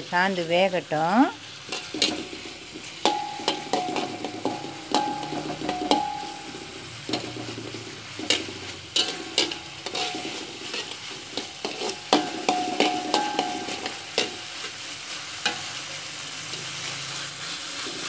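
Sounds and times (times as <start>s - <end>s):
vegetables sizzling in oil: 0.0s - 18.0s
wok ringing: 1.0s - 18.0s
metal spatula scraping wok: 1.3s - 18.0s.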